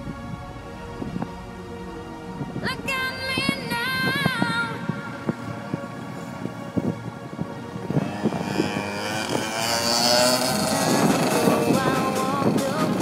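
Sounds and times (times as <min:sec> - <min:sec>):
kart engine revving: 0:07.8 - 0:13.0.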